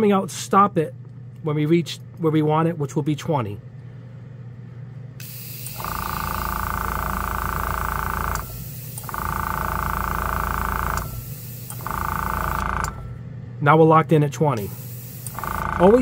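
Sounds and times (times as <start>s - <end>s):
compressor hum with whine: 0.0s - 16.0s
air hissing from airbrush: 5.2s - 6.0s, 8.5s - 9.1s, 11.1s - 11.9s, 14.6s - 15.5s.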